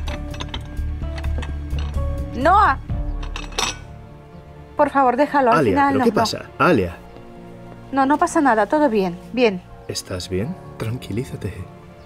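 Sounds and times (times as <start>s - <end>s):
ceramic plates clattering: 0.0s - 2.1s, 3.1s - 3.9s
quiet film music: 0.0s - 12.0s.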